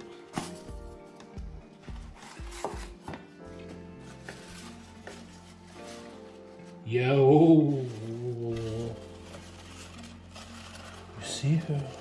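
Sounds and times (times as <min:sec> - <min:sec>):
paper packing rustling: 0:00.0 - 0:12.0.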